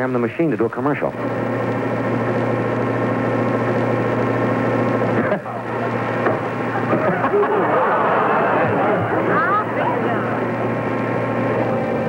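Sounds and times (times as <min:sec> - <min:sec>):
steady low hum: 0:00.0 - 0:12.0
busy murmuring: 0:06.8 - 0:11.6.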